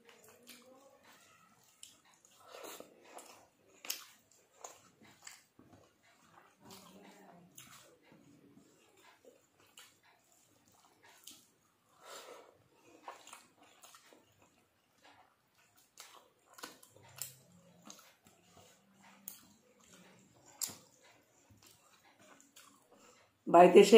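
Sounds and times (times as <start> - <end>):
lip smacks from chewing: 0.0 - 12.2, 12.8 - 23.4
rice squishing by hand: 0.0 - 23.4
small clicks of eating: 0.0 - 23.4.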